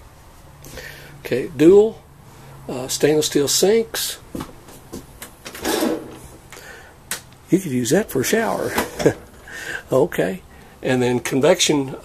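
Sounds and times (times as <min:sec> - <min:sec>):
hose sliding out: 0:05.6 - 0:06.4.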